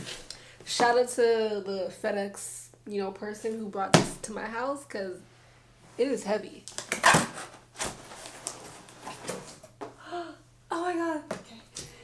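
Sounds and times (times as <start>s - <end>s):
woman speaking: 0.7s - 5.2s, 6.0s - 6.7s, 10.1s - 11.8s
cardboard and tape tearing: 6.7s - 9.7s
woman vocalizing: 10.0s - 11.7s.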